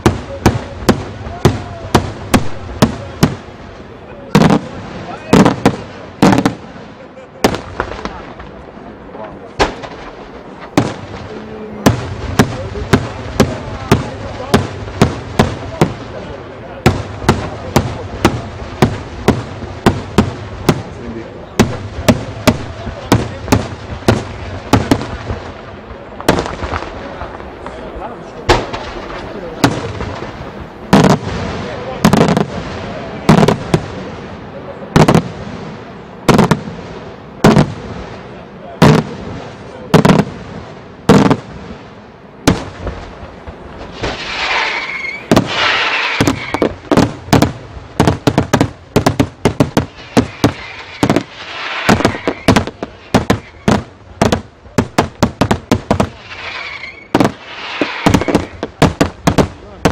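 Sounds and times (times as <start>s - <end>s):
fireworks bursting bangs: 0.0s - 59.9s
fireworks crackling: 0.0s - 59.9s.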